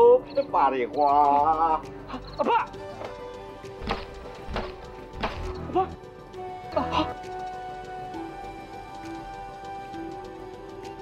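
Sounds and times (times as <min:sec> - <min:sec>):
soft film music: 0:00.0 - 0:11.0
sharp knock: 0:03.8 - 0:05.5
person exclaiming: 0:05.7 - 0:06.0.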